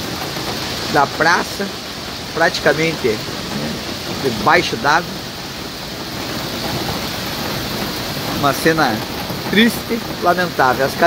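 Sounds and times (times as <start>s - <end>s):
heavy rain on wet ground: 0.0s - 11.0s.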